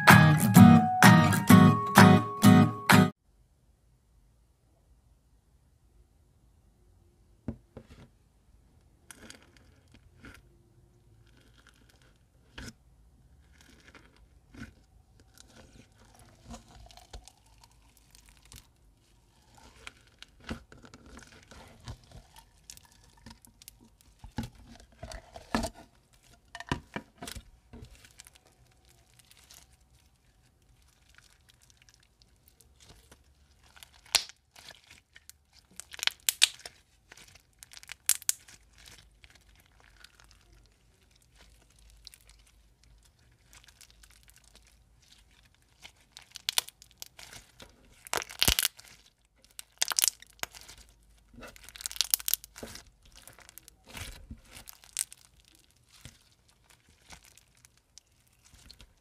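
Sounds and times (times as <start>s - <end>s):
slime with foam beads crackling: 11.1s - 26.6s, 27.2s - 59.0s.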